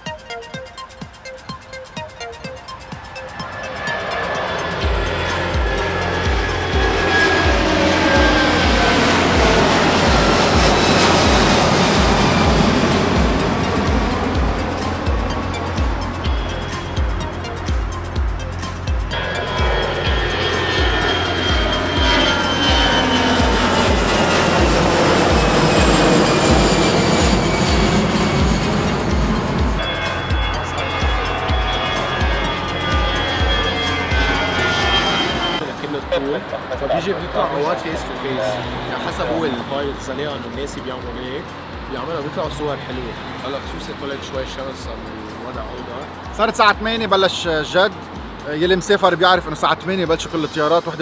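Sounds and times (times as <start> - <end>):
background music with beat: 0.0 - 51.0
jet engines whining overhead: 0.0 - 51.0.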